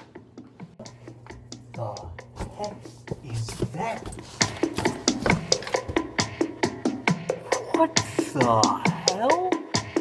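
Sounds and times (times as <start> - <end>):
rhythmic clicking knocks: 0.3 - 10.0.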